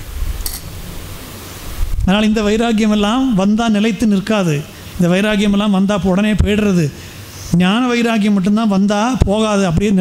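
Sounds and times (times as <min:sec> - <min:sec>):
steady noise with low rumble: 0:00.0 - 0:10.0.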